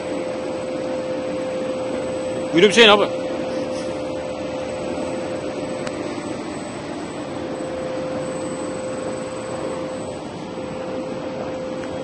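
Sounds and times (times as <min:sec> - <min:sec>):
vacuum suction unit whining: 0:00.0 - 0:12.0.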